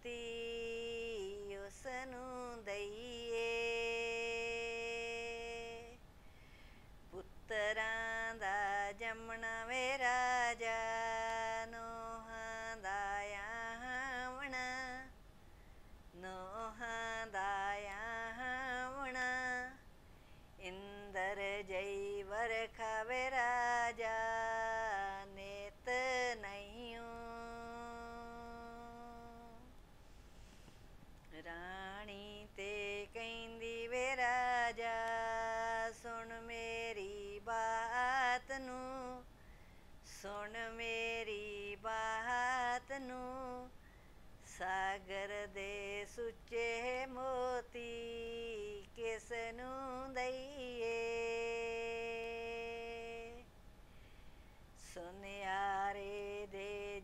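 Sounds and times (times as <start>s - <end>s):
woman singing unaccompanied: 0.0s - 6.0s, 7.1s - 15.2s, 16.1s - 20.0s, 20.6s - 29.8s, 31.2s - 39.3s, 40.0s - 43.8s, 44.4s - 53.5s, 54.8s - 57.0s
faint room noise: 0.0s - 57.0s.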